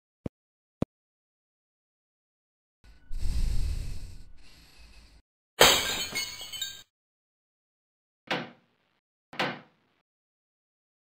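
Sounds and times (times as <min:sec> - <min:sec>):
glass shattering: 0:05.6 - 0:06.9.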